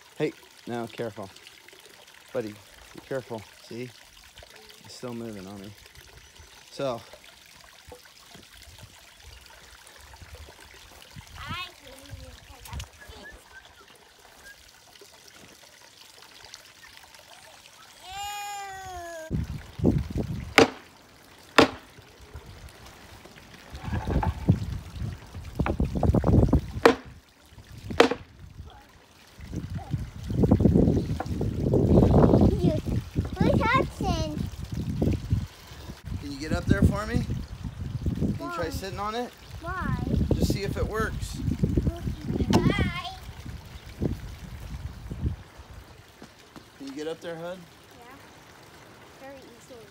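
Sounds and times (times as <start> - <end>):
small waterfall trickling: 0.0 - 49.9
child calling out: 17.8 - 19.4, 42.0 - 43.3
hammer blows on board: 20.5 - 20.8, 21.6 - 21.8, 26.8 - 27.1, 28.0 - 28.2.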